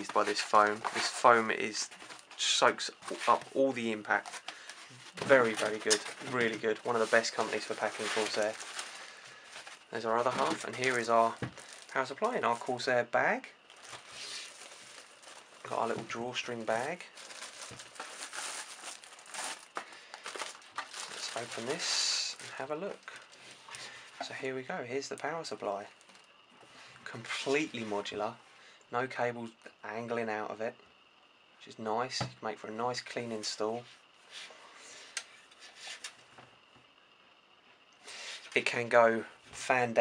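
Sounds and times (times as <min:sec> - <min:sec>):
plastic wrapping crinkling: 0:00.0 - 0:12.9, 0:13.7 - 0:23.4
cloth bag rustling: 0:04.9 - 0:12.6, 0:13.7 - 0:15.9, 0:16.7 - 0:21.9.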